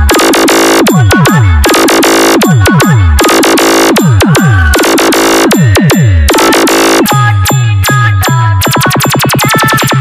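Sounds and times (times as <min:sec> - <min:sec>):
deep bass drops: 0:00.0 - 0:08.4
electronic dance music: 0:00.0 - 0:10.0
harsh synth noise: 0:00.0 - 0:10.0.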